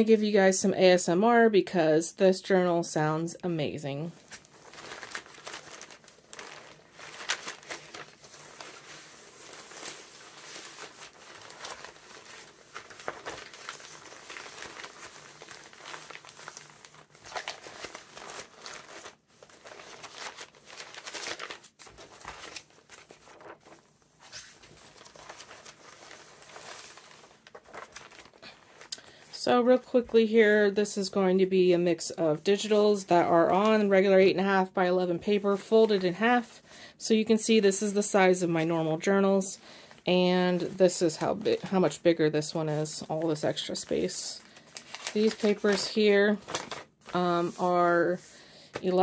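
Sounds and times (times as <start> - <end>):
stiff paper pages rustling: 4.1 - 30.3, 43.0 - 49.0.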